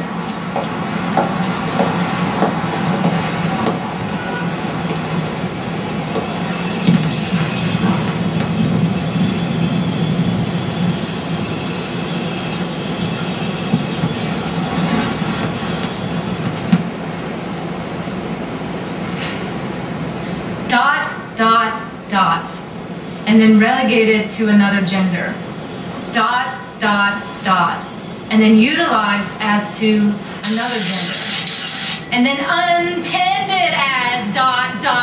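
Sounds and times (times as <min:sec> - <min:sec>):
loud rumbling mechanical noise: 0:30.2 - 0:32.5.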